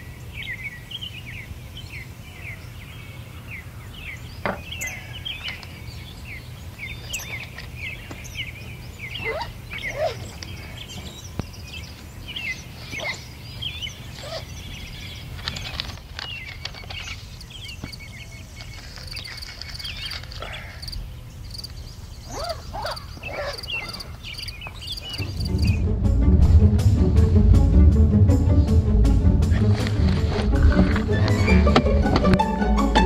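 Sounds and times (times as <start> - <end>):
small birds chirping: 0.0 - 25.9
low outdoor rumble: 24.0 - 33.0.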